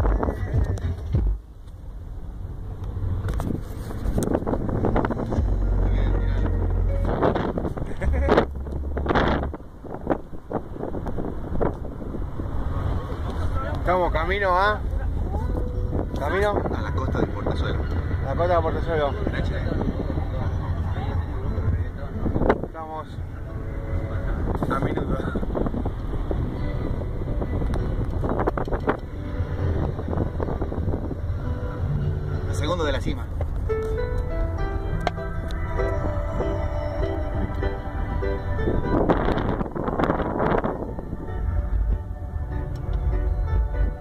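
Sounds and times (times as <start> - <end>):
car engine and road rumble: 0.0 - 44.0.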